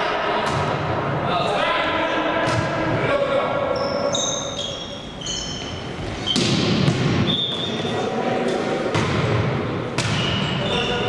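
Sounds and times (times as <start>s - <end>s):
players' voices: 0.0s - 5.2s, 7.0s - 11.0s
volleyball slaps: 6.3s - 7.4s, 8.9s - 10.4s.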